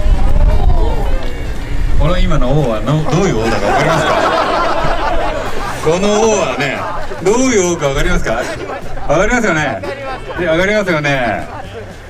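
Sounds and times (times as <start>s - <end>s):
car engine rumble: 0.0s - 12.0s
voices: 0.0s - 12.0s.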